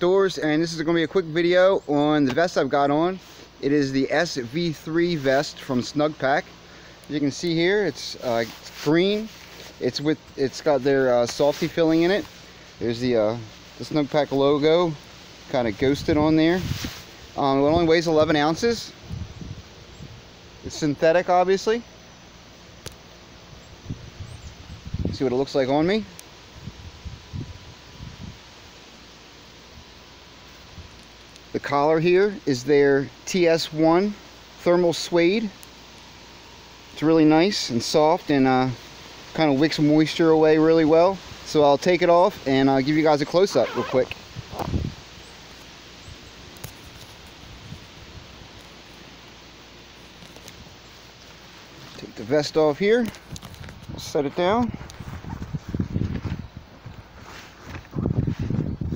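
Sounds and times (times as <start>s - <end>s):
breeze and rustling leaves: 0.0s - 58.9s
light wind: 0.0s - 58.9s
rustling: 7.3s - 17.4s, 41.2s - 58.7s.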